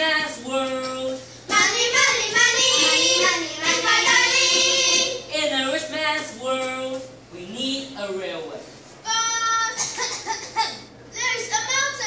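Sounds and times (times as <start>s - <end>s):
children singing into microphones: 1.5s - 5.3s.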